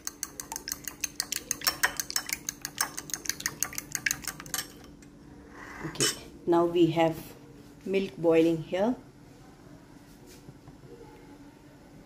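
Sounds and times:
fork clinking against bowl: 0.0s - 5.1s.

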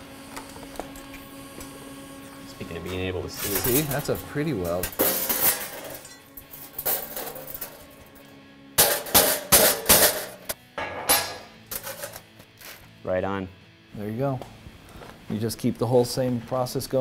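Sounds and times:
hammer striking sheet steel: 8.8s - 11.5s.

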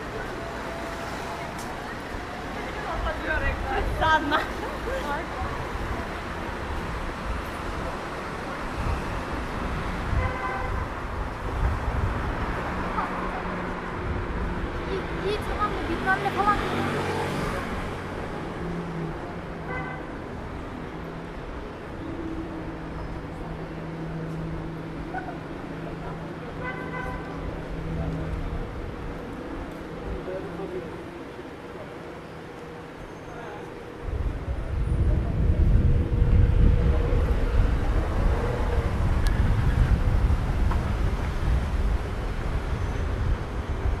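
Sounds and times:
car traffic: 0.0s - 44.0s
loud uneven low rumble: 34.0s - 44.0s.

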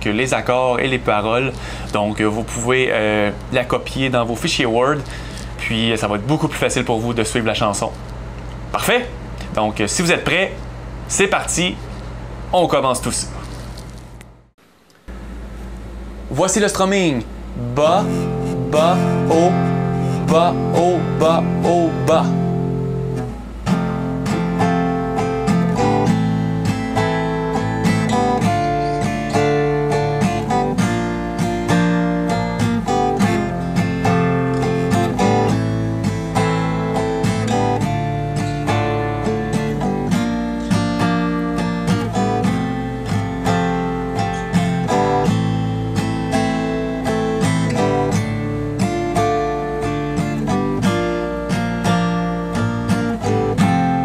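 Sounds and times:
acoustic guitar strumming: 0.0s - 8.0s, 17.4s - 54.0s.

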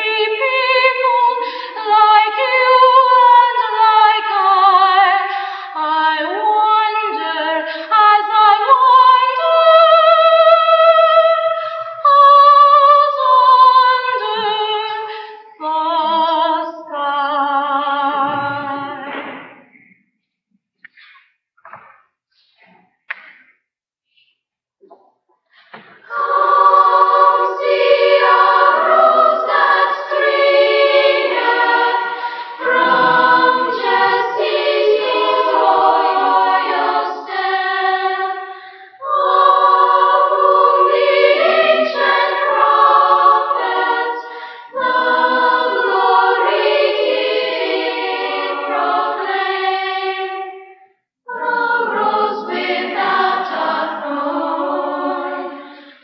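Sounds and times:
children's choir singing: 0.0s - 20.0s, 25.7s - 56.0s.

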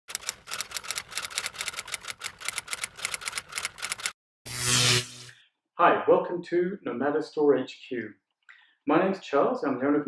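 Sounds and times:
rapid sharp mechanical clicks: 0.1s - 4.2s.

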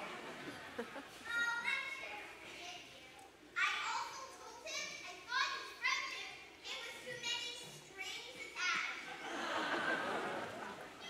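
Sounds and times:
child speaking in echoing hall: 0.8s - 9.3s.

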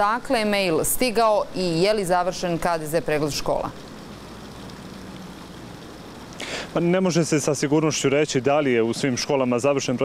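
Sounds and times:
faint street traffic: 0.0s - 10.0s
microphone hiss: 0.0s - 10.0s.

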